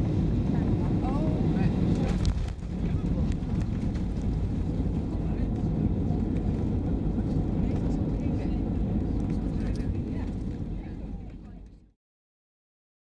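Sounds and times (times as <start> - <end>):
airplane cabin engine rumble: 0.0 - 12.0.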